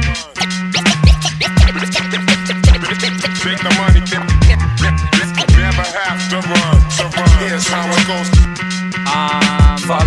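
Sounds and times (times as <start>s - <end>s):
deep kick drums: 3.9s - 4.8s, 5.5s - 5.8s, 6.7s - 7.4s.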